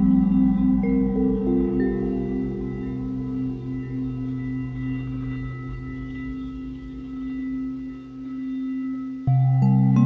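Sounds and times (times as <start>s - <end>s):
singing bowl ringing: 0.0s - 10.0s.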